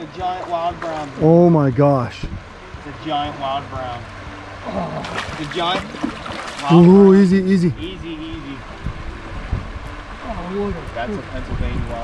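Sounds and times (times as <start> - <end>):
creek water running over riffles: 0.0 - 12.0.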